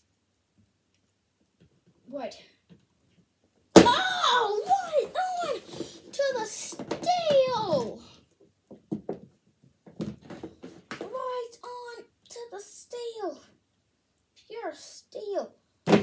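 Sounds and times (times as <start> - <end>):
child making vocal noises: 3.8 - 8.2.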